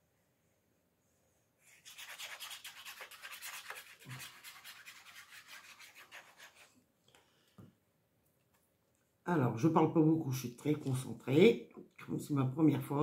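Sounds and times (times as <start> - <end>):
paper card scratchy rubbing: 1.8 - 6.8.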